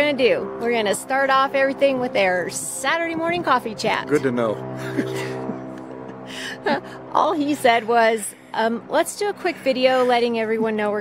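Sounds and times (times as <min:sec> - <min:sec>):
steady low hum: 0:00.0 - 0:11.0
woman laughing breathlessly: 0:04.8 - 0:07.1.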